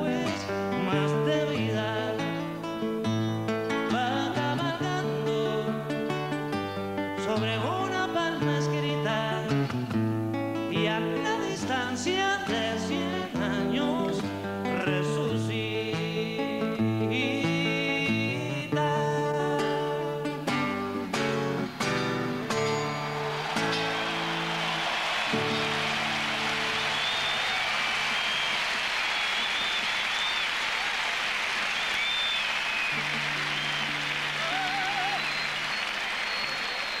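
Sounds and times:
acoustic guitar strumming: 0.0 - 29.3, 32.8 - 35.8
low guitar notes: 15.6 - 27.4
crowd applause and cheering: 21.2 - 37.0
crowd whistling: 21.2 - 37.0.

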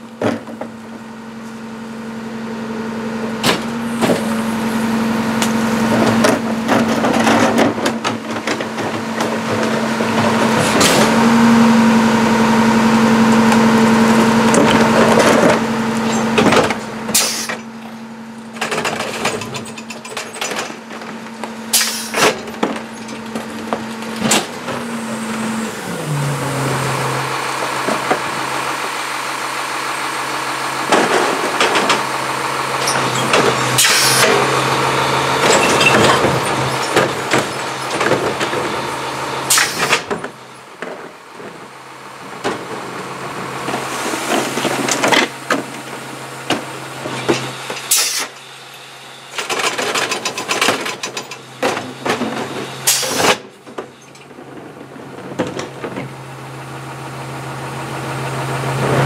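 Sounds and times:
garbage truck engine revving: 0.0 - 59.0
hydraulic packer running: 0.0 - 59.0.

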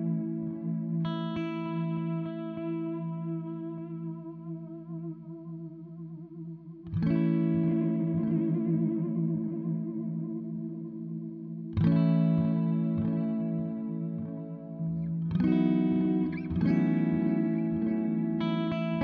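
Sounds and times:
electric guitar chords with delay: 0.0 - 19.0.

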